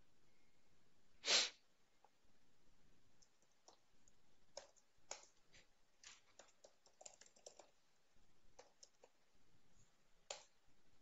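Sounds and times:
person sharp breath: 1.2 - 1.6
keyboard clicks: 4.5 - 5.4, 6.0 - 7.8, 8.6 - 9.2, 10.2 - 10.6.

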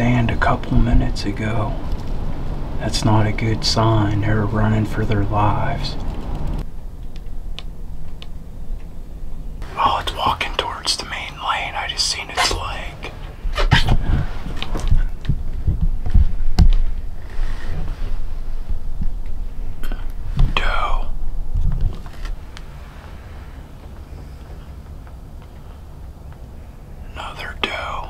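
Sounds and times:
low steady rumble: 0.0 - 28.0
people whispering: 9.6 - 14.0, 19.8 - 21.2, 27.0 - 28.0.

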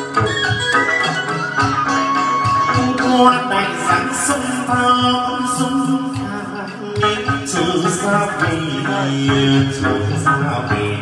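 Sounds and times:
plucked lute: 0.0 - 11.0
man singing into microphone: 2.8 - 11.0.

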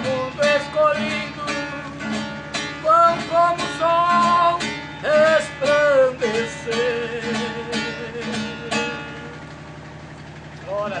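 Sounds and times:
steady low hum: 0.0 - 11.0
strummed guitar chord: 0.0 - 11.0.

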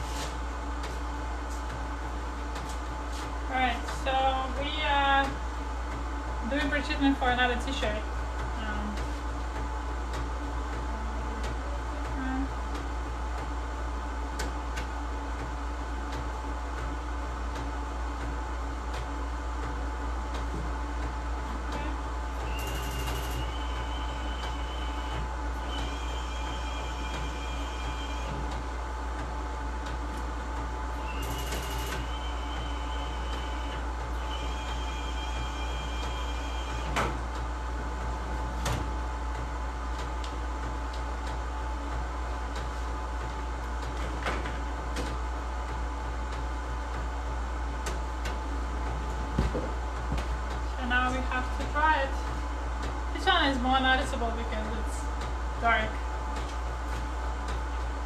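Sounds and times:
high machine whine: 0.0 - 58.0
printer machine hum: 0.0 - 58.0.

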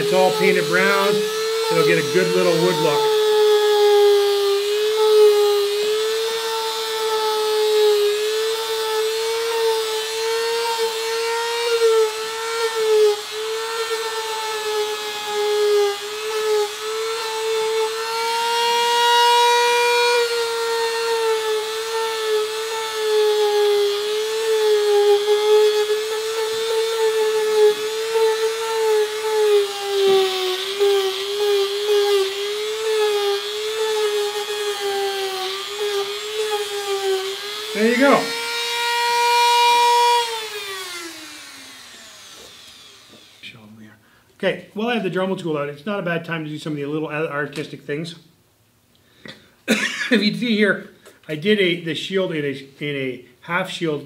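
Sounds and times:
rotary tool whining: 0.0 - 43.6.

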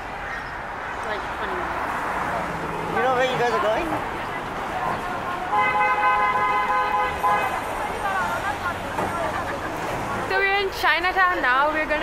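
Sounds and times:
street traffic: 0.0 - 12.0
car horn honking: 5.4 - 7.8.

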